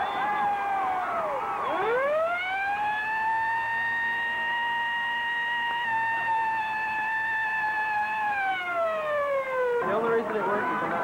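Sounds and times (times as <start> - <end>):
siren wailing: 0.0 - 11.0.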